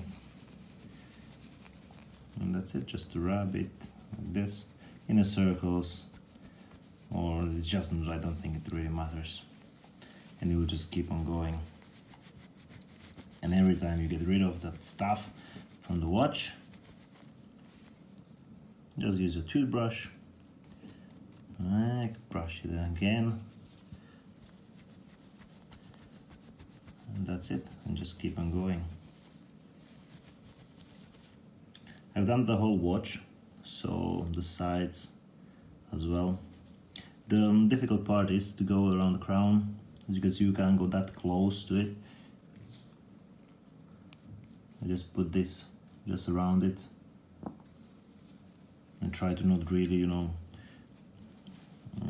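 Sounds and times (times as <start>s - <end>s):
watch case being polished: 0.0s - 17.3s, 24.5s - 29.3s
cloth rubbing on metal: 0.0s - 31.6s, 36.3s - 38.6s, 42.6s - 46.8s, 47.6s - 52.0s.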